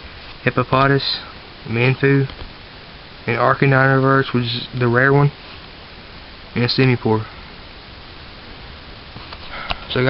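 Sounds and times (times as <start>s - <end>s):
recording hiss: 0.0s - 10.0s.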